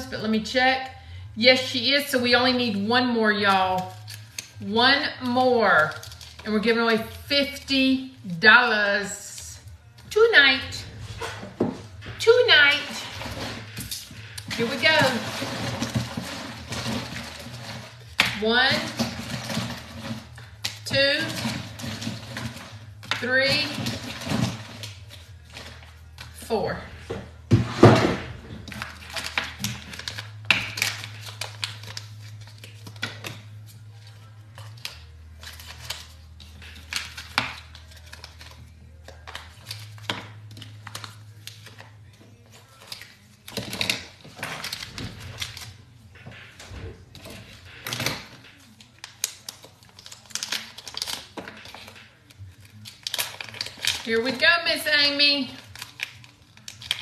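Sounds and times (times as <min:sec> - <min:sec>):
faint background music: 0:00.0 - 0:57.0
plastic bags crinkling: 0:05.2 - 0:07.3, 0:10.7 - 0:57.0.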